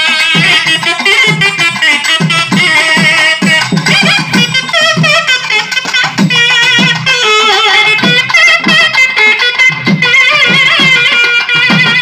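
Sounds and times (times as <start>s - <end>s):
reed pipes playing melody: 0.0s - 12.0s
barrel drums beating: 0.3s - 12.0s.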